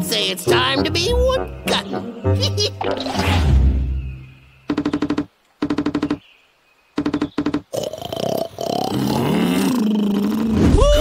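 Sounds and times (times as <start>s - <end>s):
woodpecker rapid knocks: 4.6s - 6.3s, 6.9s - 7.9s
bear groaning: 7.7s - 11.0s.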